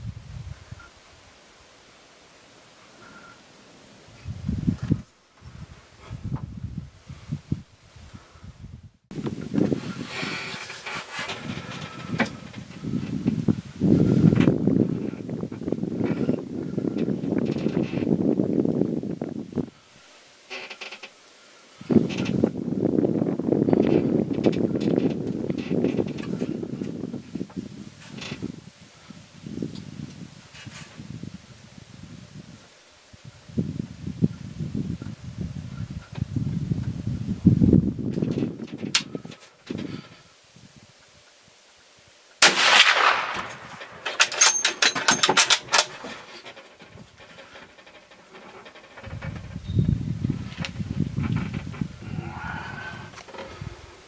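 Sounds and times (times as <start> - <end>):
muffled rumbling on microphone: 4.1 - 19.8, 45.6 - 54.0
rifle shot: 42.4 - 44.5
sharp clicks and rattles: 42.4 - 49.6.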